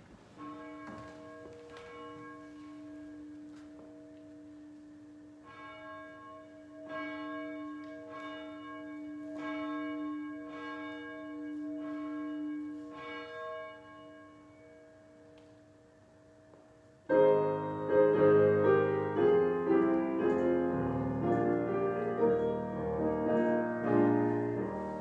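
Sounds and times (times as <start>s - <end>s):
church bell tolling: 0.4s - 25.0s.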